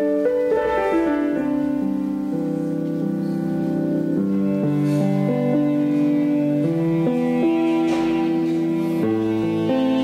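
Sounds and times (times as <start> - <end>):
slow electronic melody: 0.0 - 10.0.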